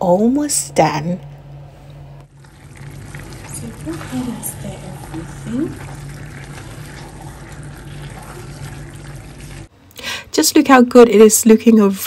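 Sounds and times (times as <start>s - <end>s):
steady low hum: 0.0s - 10.3s
soft wet stirring of stew: 2.3s - 9.7s.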